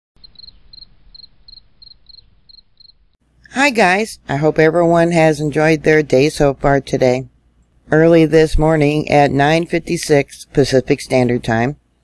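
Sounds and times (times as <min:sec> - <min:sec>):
cricket chirping: 0:00.2 - 0:03.2.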